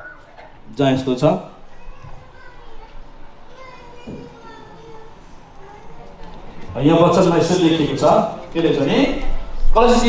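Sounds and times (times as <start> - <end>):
faint children's voices: 0.0 - 10.0.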